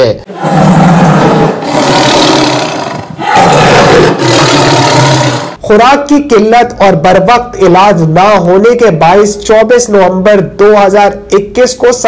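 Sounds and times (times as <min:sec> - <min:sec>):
big cat roaring: 0:00.3 - 0:05.6.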